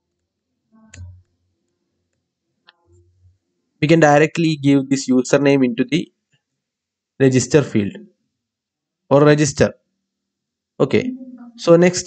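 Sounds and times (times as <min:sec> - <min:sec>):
man's voice: 0:03.8 - 0:06.0, 0:07.2 - 0:08.0, 0:09.1 - 0:09.7, 0:10.8 - 0:12.0.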